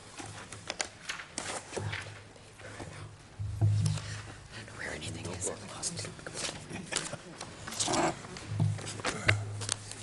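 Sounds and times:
low electrical hum: 0:00.0 - 0:10.0
people murmuring and whispering: 0:01.5 - 0:10.0.

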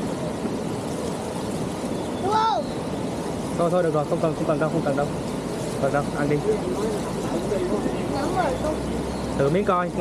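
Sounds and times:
steady rushing noise: 0:00.0 - 0:10.0
quiet voices talking: 0:02.2 - 0:10.0.

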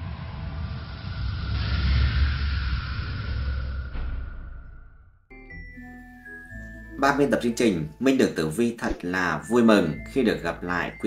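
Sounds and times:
rushing noise: 0:00.0 - 0:05.2
low rumbling: 0:00.0 - 0:05.3.

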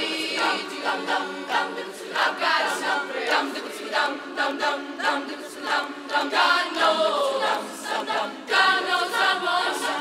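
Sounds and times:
girls' choir singing: 0:00.0 - 0:10.0.

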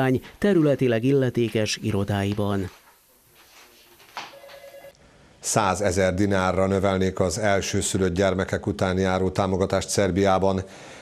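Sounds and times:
electronic telephone ring: 0:04.3 - 0:05.0.

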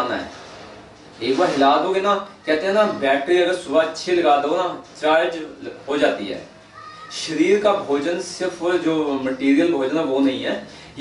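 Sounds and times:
man speaking: 0:01.2 - 0:11.0.

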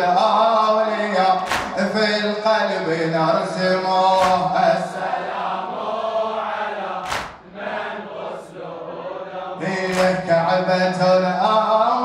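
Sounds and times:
man chanting a lament: 0:00.0 - 0:05.4, 0:09.6 - 0:12.0.

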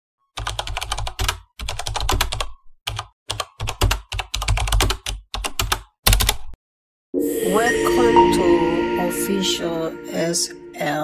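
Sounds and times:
computer keyboard typing: 0:00.4 - 0:06.6.

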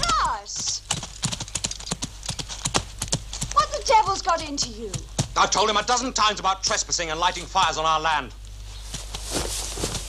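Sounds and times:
horse hooves clip-clopping: 0:00.0 - 0:08.2.

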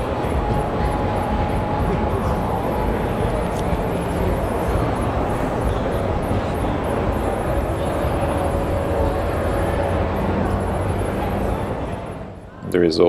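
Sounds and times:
faint background music: 0:00.0 - 0:13.0
hall crowd din: 0:00.0 - 0:13.0.

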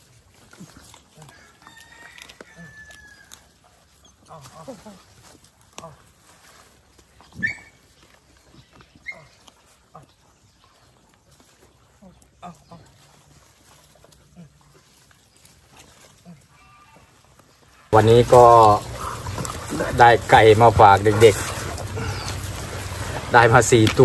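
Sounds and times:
dog yelping: 0:07.4 - 0:07.8.

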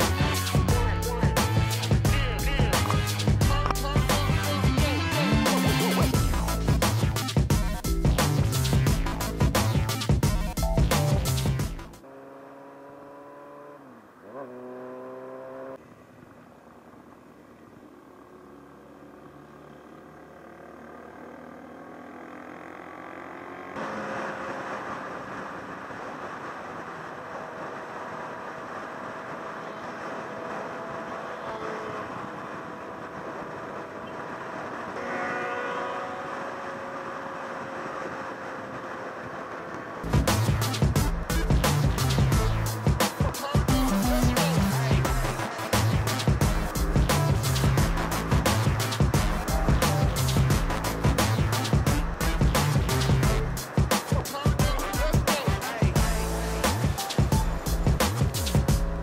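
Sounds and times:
motorcycle engine: 0:00.0 - 0:59.0.

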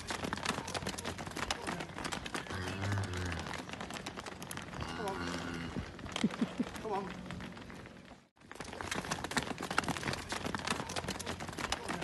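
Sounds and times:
cattle hooves clattering on pavement: 0:00.0 - 0:12.0.

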